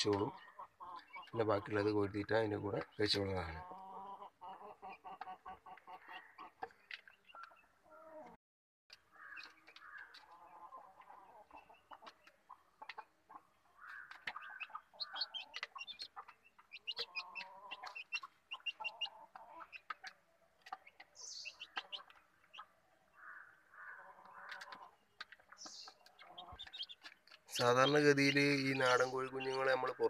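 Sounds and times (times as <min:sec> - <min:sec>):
chicks clucking softly: 0:00.0 - 0:08.4, 0:09.4 - 0:22.9, 0:23.9 - 0:29.9
beaks pecking plastic tray: 0:13.8 - 0:22.4, 0:24.2 - 0:29.9.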